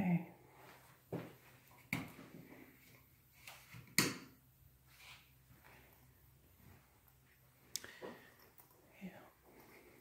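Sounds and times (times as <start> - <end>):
faint whispering voice: 8.8 - 10.0.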